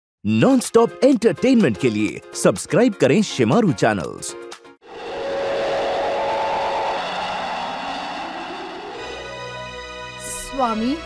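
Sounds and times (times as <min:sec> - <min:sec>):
loud steady rushing noise: 0:04.8 - 0:10.1
lower tone rising: 0:04.8 - 0:10.4
held mid-pitched tone: 0:04.9 - 0:09.8.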